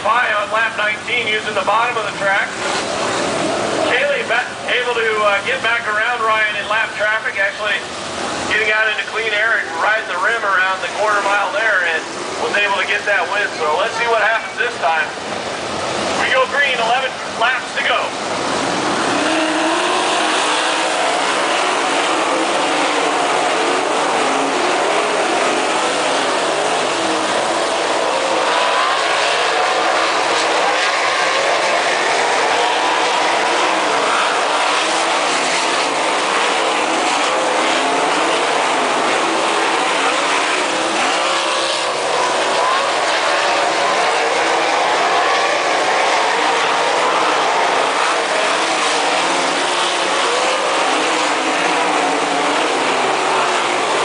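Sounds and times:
race car engines roaring: 0:00.0 - 0:54.0.

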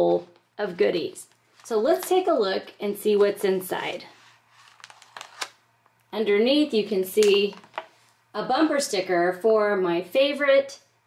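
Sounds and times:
plastic sleeve handled: 0:01.0 - 0:02.4, 0:03.0 - 0:05.6, 0:07.2 - 0:08.1
paper crinkling: 0:03.1 - 0:05.6.

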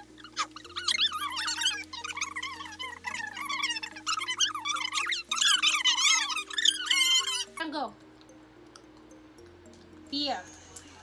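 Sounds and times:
high-pitched sped-up voices chattering: 0:00.0 - 0:08.0.

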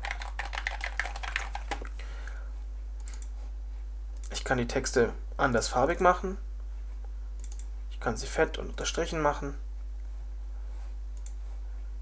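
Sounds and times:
typing on computer keyboard: 0:00.0 - 0:01.8.

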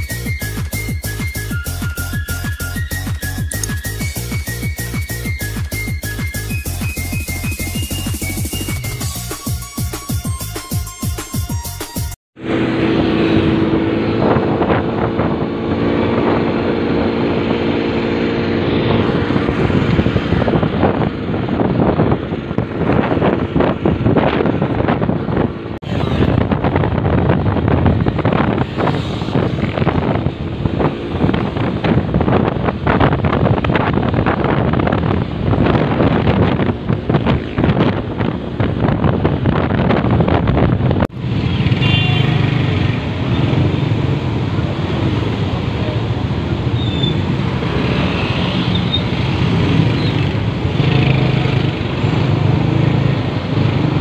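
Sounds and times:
motorcycle engine running: 0:12.4 - 0:54.0
wind buffeting microphone: 0:12.9 - 0:54.0.

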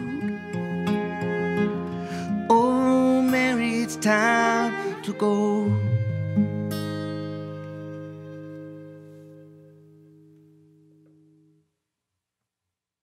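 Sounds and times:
acoustic guitar chord ringing: 0:00.0 - 0:11.6.

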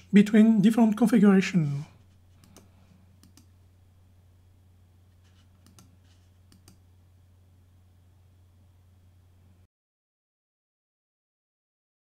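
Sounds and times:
low steady hum: 0:00.0 - 0:09.7
computer mouse clicks: 0:02.4 - 0:03.5, 0:05.2 - 0:06.8.

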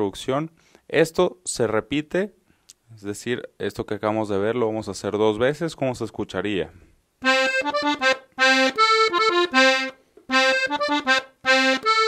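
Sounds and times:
button accordion melody: 0:07.2 - 0:12.0.

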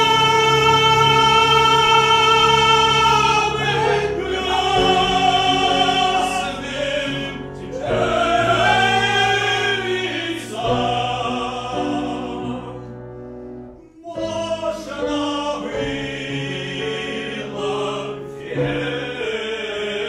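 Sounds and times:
grand piano accompaniment: 0:00.0 - 0:20.0
men singing operatic harmony: 0:00.0 - 0:20.0.

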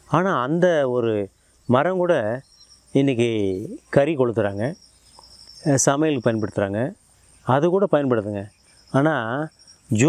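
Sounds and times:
crickets chirring: 0:00.0 - 0:10.0
man speaking: 0:00.1 - 0:04.8, 0:05.6 - 0:10.0.

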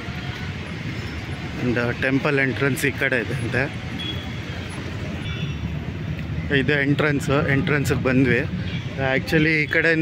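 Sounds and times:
distant road traffic hum: 0:00.0 - 0:10.0.

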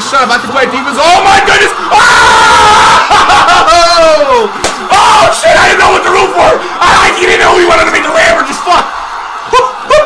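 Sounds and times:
man yelling excitedly: 0:00.9 - 0:08.9.

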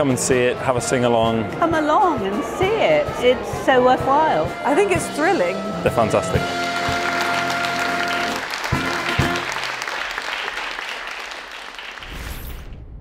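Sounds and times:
audience applause: 0:05.9 - 0:12.3.

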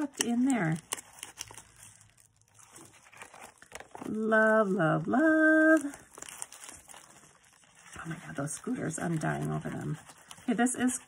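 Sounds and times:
paper crinkling and rustling: 0:00.0 - 0:11.0.

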